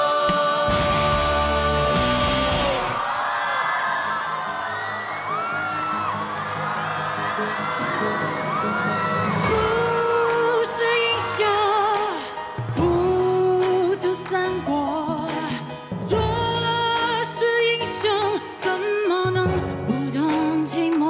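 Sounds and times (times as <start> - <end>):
live rock band playing: 0.0 - 3.0
audience screaming and whooping: 0.6 - 12.4.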